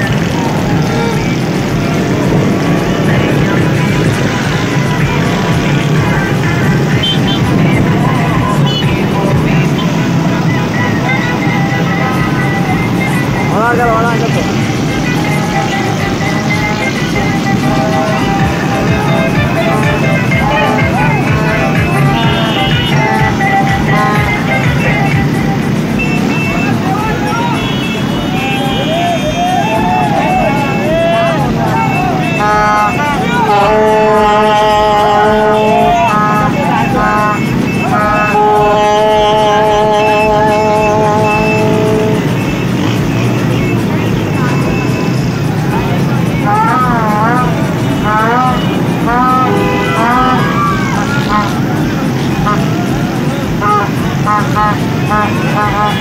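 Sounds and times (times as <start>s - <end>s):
horns sounding long notes: 0.0s - 56.0s
motorcycle engines running: 0.0s - 56.0s
voices shouting: 0.0s - 56.0s.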